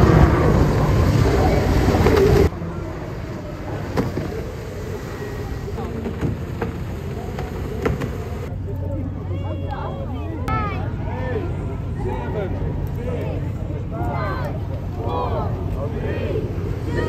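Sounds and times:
distant voices: 0.0 - 17.0
loud rushing outdoor noise: 0.0 - 17.0.

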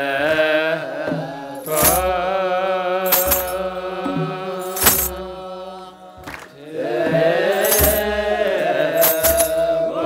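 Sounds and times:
clergy chanting: 0.0 - 10.0
sistrum jingle: 1.6 - 2.2, 3.1 - 3.7, 4.6 - 5.2, 7.5 - 8.2, 9.0 - 9.7.

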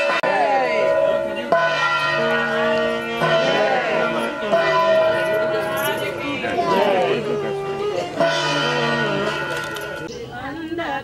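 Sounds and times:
bells ringing: 0.0 - 10.3.

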